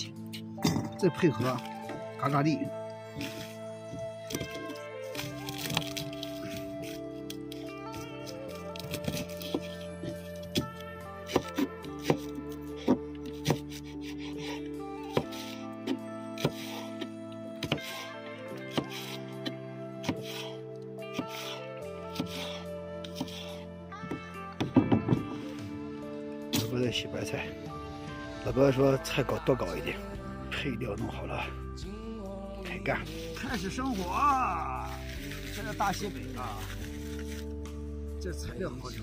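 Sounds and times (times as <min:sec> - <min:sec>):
background music: 0:00.0 - 0:39.0
knife chopping on plastic board: 0:11.3 - 0:13.8, 0:15.1 - 0:16.8, 0:17.6 - 0:18.0, 0:18.7 - 0:19.2.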